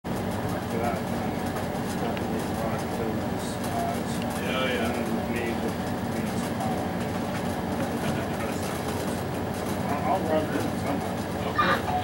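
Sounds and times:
engine idling: 0.1 - 12.0
people talking: 0.6 - 12.0.

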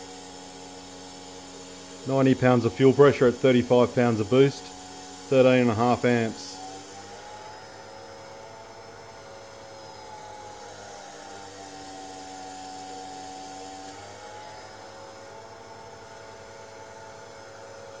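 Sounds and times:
electric fuel pump whining: 0.0 - 18.0.

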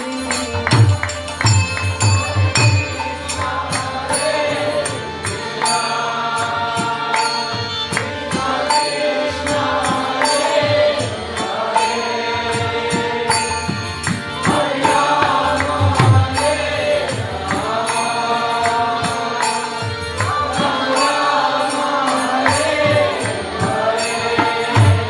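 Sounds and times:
harmonium drone: 0.0 - 25.0
sung devotional chant: 0.0 - 25.0.

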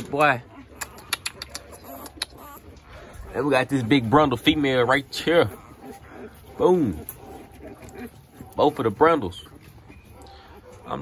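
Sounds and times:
puppy squeak: 0.5 - 2.7.

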